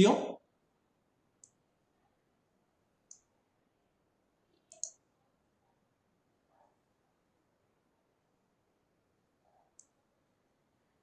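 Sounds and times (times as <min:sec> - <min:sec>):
faint sharp clicks: 0:01.4 - 0:01.6, 0:04.5 - 0:05.0, 0:09.8 - 0:10.0.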